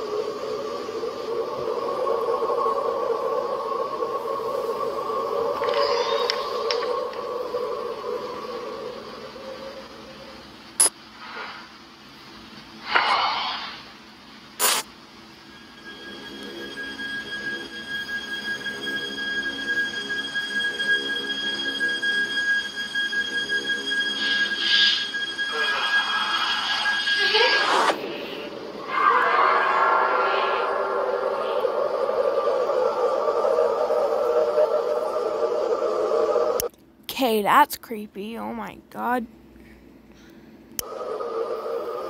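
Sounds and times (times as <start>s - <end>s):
steady high tones: 0.0s - 10.9s, 15.0s - 36.7s
suspense drone: 0.0s - 37.0s, 38.5s - 42.0s
rising sweep: 22.9s - 36.6s.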